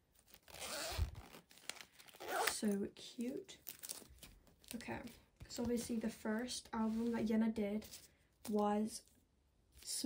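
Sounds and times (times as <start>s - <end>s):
zipper pulled open: 0.3s - 1.5s, 2.1s - 2.6s.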